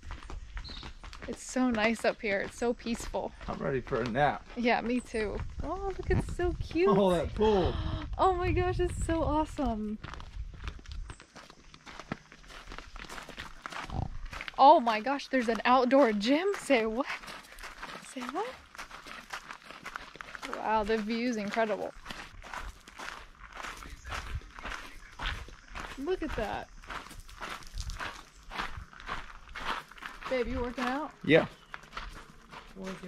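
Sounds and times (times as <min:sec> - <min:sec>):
footsteps on garden path: 0:00.0 - 0:33.0.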